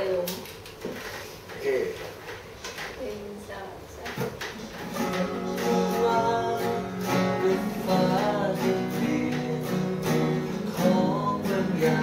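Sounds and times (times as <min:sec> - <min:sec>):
woman speaking: 0:00.0 - 0:00.5, 0:02.9 - 0:04.4.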